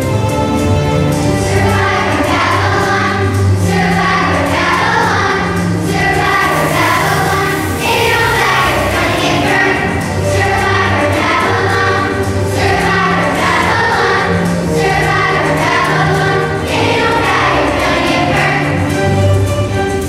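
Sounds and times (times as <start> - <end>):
children's choir singing: 0.0 - 20.0
instrumental accompaniment: 0.0 - 20.0.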